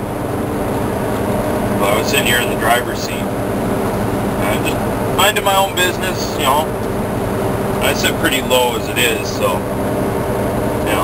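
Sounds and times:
road noise: 0.0s - 11.0s
truck diesel engine drone: 0.0s - 11.0s.

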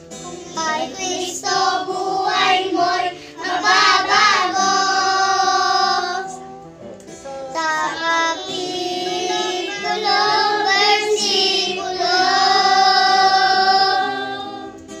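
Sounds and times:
children singing gospel song: 0.0s - 6.7s, 7.5s - 15.0s.

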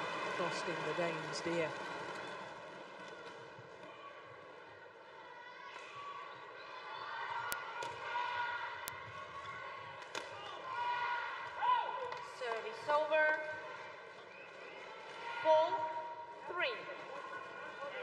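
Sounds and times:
arena crowd noise: 0.0s - 18.0s.

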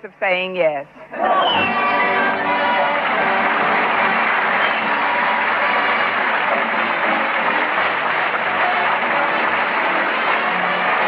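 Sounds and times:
faint orchestra music: 1.1s - 11.0s
audience laughing and applauding: 1.2s - 11.0s.

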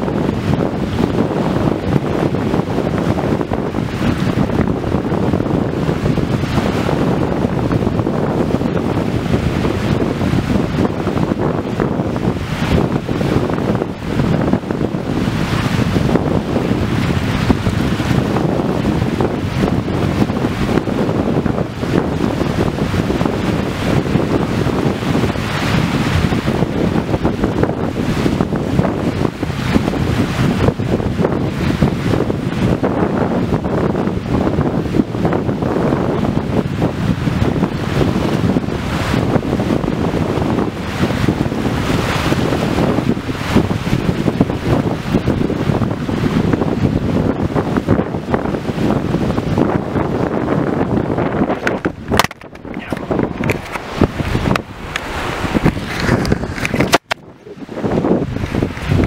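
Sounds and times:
waves washing on shore: 0.0s - 59.0s
wind buffeting microphone: 0.0s - 59.0s.

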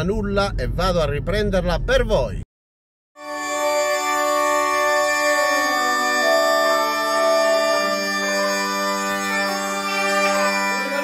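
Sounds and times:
bagpipe music: 3.2s - 11.0s.

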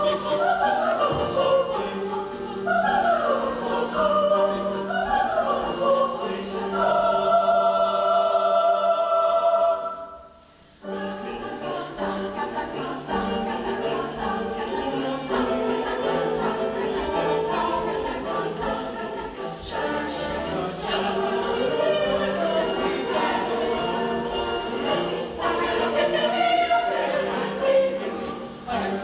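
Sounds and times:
youth choir singing: 0.0s - 29.0s.

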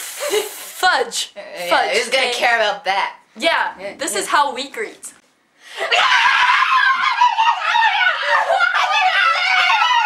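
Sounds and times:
women screaming high-pitched: 5.9s - 10.0s.

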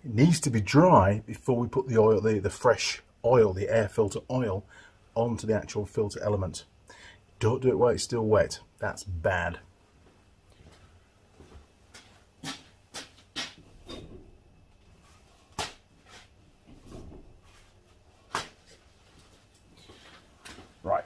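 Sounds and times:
knocks and rustles of movement: 9.9s - 21.0s.

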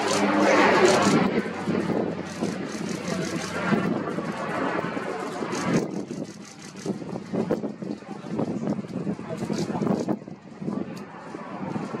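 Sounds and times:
turboprop plane droning: 0.0s - 12.0s.

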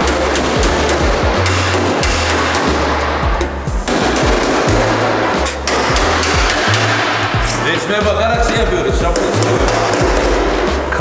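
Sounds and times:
background music with bass line: 0.0s - 11.0s
hammer tapping sheet metal: 0.0s - 11.0s.

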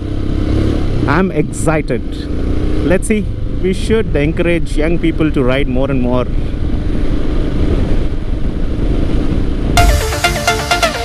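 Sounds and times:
motorcycle engine cruising: 0.0s - 5.3s
electronic dance music: 9.8s - 11.0s.

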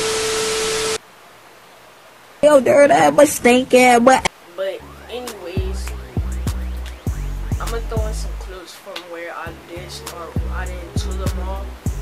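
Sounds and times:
static hiss: 0.0s - 12.0s
steady mid-pitched beep: 4.8s - 8.2s.

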